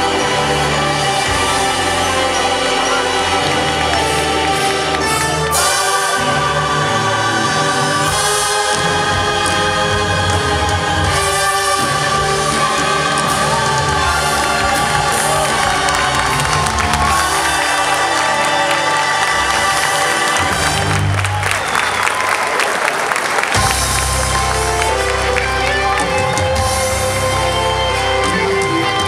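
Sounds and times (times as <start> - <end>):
choir singing with accompaniment: 0.0 - 22.2
audience cheering and applause: 7.4 - 29.0.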